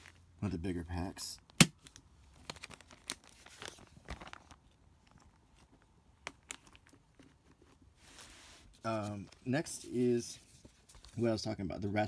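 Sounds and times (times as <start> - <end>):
plastic sleeves crinkling: 0.0 - 0.3, 1.8 - 11.4.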